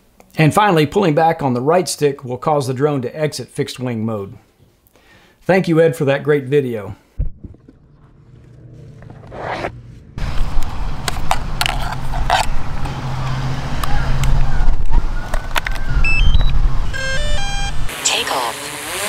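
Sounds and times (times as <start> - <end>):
drone propellers whirring: 7.3 - 19.0
wind rumble on microphone: 10.2 - 17.0
electronic beeps: 15.9 - 17.8.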